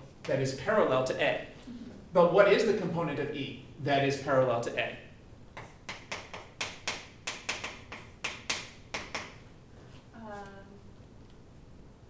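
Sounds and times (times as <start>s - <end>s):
chalk tapping on chalkboard: 5.6s - 9.4s.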